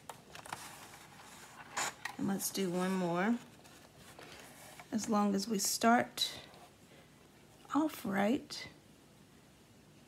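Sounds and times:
paper rustling: 0:00.1 - 0:05.0.

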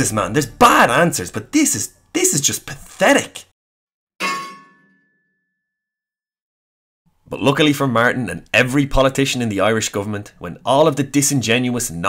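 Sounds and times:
metallic clang: 0:04.2 - 0:05.2.

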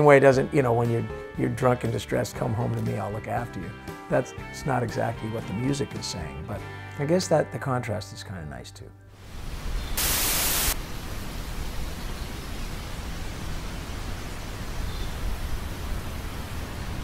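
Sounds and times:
static hiss: 0:09.1 - 0:17.0.

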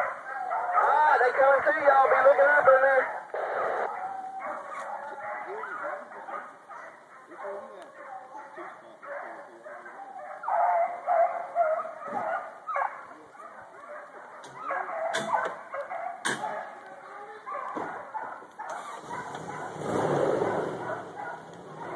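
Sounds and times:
hounds baying and yelping: 0:00.0 - 0:21.9.

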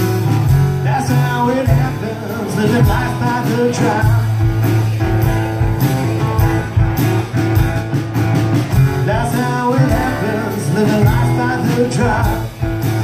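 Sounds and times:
acoustic guitars playing blues: 0:00.0 - 0:13.0
man singing: 0:00.8 - 0:04.8, 0:08.9 - 0:13.0.

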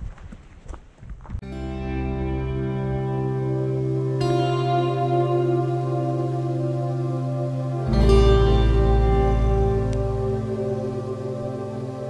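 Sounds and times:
ambient music with held chords: 0:01.5 - 0:12.0.

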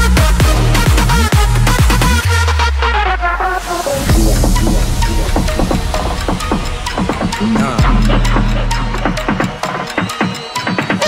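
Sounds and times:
deep sustained bass note: 0:04.1 - 0:09.3.

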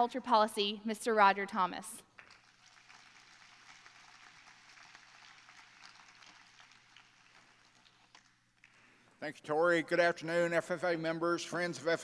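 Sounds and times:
faint applause from audience: 0:02.2 - 0:08.8.

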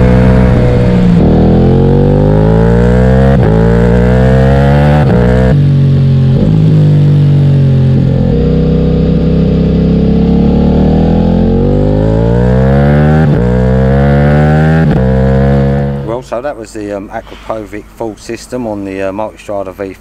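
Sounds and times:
motorcycle engine accelerating: 0:00.0 - 0:16.4.

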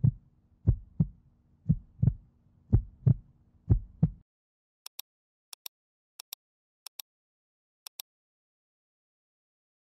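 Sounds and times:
heartbeat thumps: 0:00.0 - 0:04.2.

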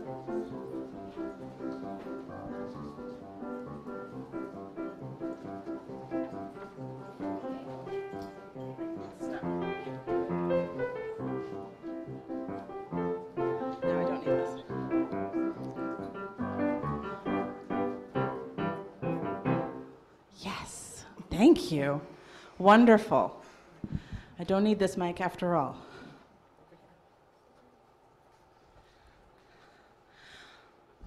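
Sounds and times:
piano music: 0:00.0 - 0:20.0.

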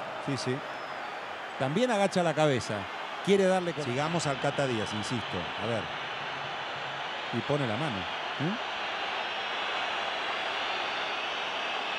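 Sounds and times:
stadium crowd hum: 0:00.0 - 0:11.9.

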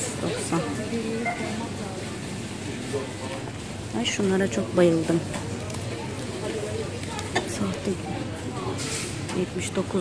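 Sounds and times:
faint voices: 0:00.0 - 0:10.0
steady store hum: 0:00.0 - 0:10.0.

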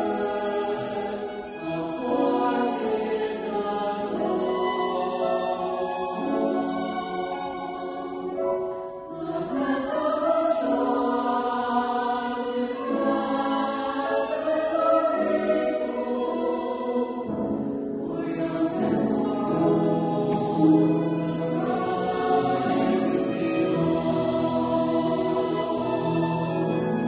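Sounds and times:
choir singing a hymn: 0:00.0 - 0:27.0.

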